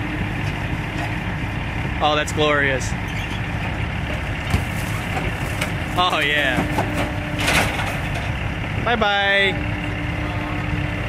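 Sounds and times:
excavator engine running: 0.0s - 11.0s
sheet metal crunching: 4.5s - 8.4s.

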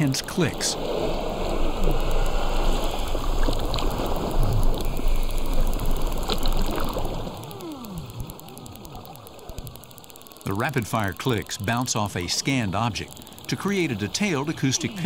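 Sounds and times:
narwhal echolocation clicks: 0.0s - 15.0s.

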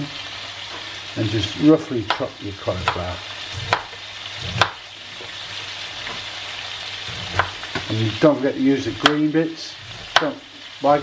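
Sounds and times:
vegetables sizzling in a pan: 0.0s - 11.0s
knife chopping on a board: 2.1s - 4.8s, 7.2s - 7.9s, 10.0s - 10.4s.

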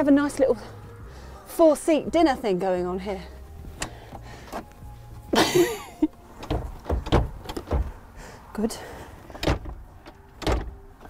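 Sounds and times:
seat knocking on floor rails: 6.4s - 8.0s
heavy thumps: 6.4s - 8.1s.

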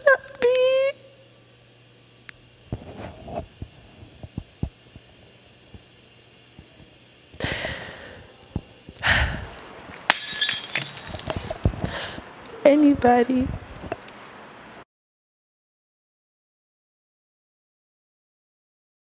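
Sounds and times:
long crash with tinkling fragments: 10.1s - 11.8s.

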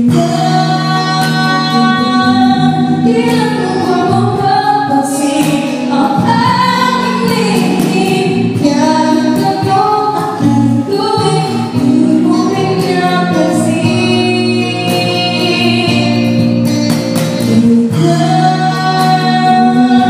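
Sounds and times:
electric guitar: 0.0s - 20.0s
woman singing a ballad: 0.0s - 20.0s.

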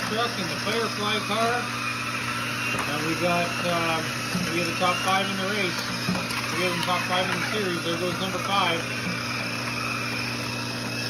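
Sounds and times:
high whine of motor and belt: 0.0s - 11.0s.

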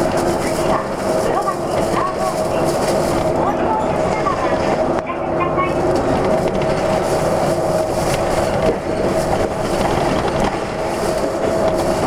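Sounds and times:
bus engine and drivetrain hum: 0.0s - 12.0s
road and tyre noise: 0.0s - 12.0s.

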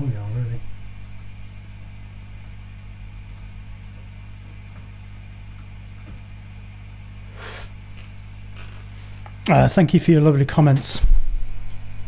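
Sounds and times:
guitar amplifier mains hum: 0.0s - 12.0s.

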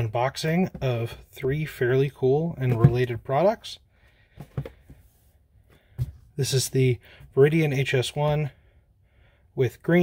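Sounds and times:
cardboard boxes tapping and rustling: 4.4s - 5.1s.

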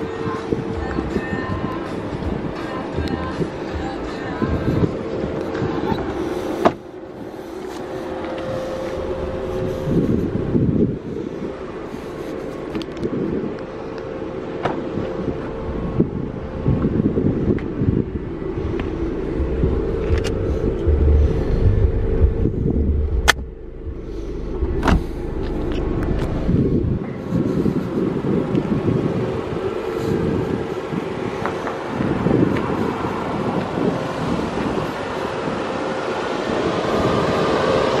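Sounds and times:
car idling hum: 0.0s - 38.0s
wind rumbling on microphone: 0.0s - 38.0s.

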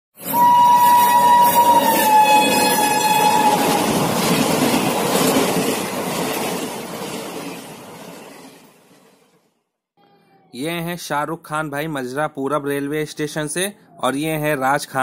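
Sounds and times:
train horn blowing: 0.2s - 4.1s
rumble of passing train: 0.2s - 9.6s.

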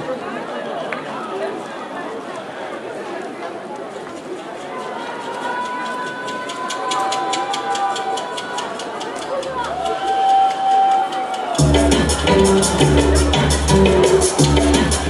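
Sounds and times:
crowd noise: 0.0s - 15.0s
quick ticking beat: 6.3s - 15.0s
band with heavy bass and drums: 11.6s - 15.0s
long held high notes: 11.6s - 15.0s.

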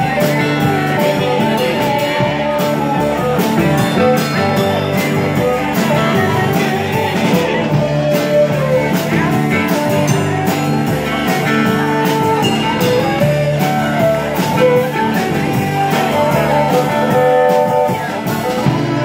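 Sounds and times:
folk-rock band playing: 0.0s - 19.0s.

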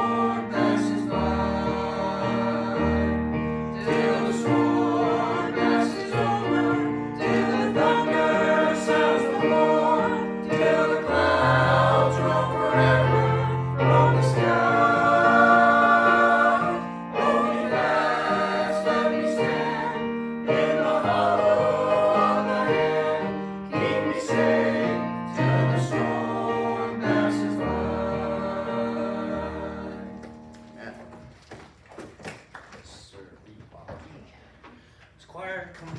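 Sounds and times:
choir singing a hymn: 0.0s - 30.5s
held accompaniment chords: 0.0s - 31.2s.

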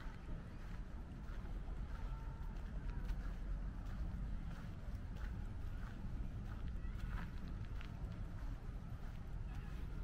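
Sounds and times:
faint footsteps: 0.0s - 10.0s.

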